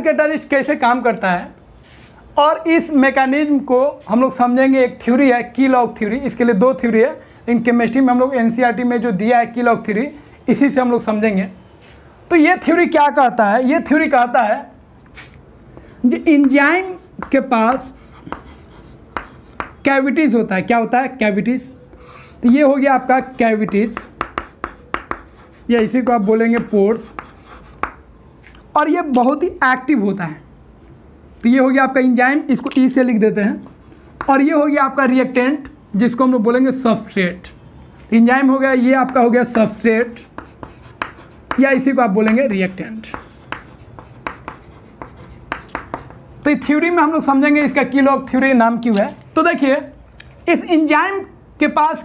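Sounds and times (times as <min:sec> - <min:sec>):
chalk scratching on chalkboard: 0:15.1 - 0:19.8, 0:22.0 - 0:28.0, 0:33.6 - 0:34.5, 0:40.1 - 0:46.2.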